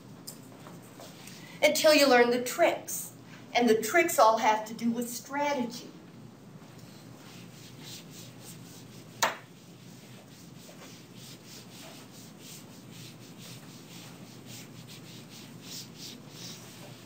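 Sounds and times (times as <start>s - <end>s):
writing strokes rubbing: 6.9s - 17.0s.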